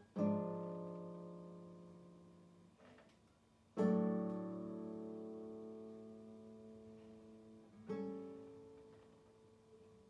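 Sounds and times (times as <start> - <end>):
classical guitar chords plucked: 0.0 - 10.0.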